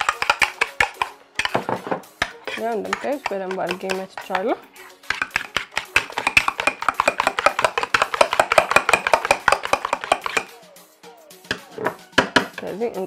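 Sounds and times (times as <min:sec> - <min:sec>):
spoon whisking egg in a bowl: 0:00.0 - 0:01.6, 0:02.2 - 0:10.5.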